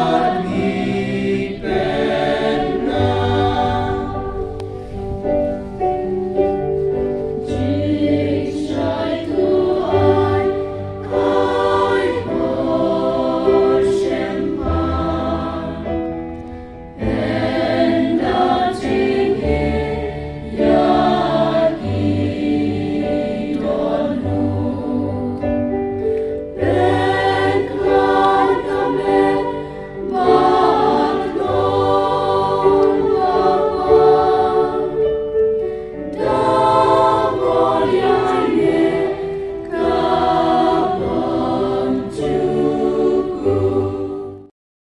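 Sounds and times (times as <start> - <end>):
women singing a hymn: 0.0 - 5.0, 7.3 - 44.5.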